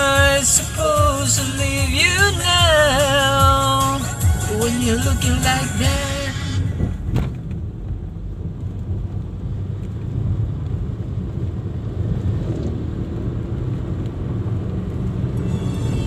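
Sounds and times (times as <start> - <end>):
car driving rumble: 0.0 - 16.0.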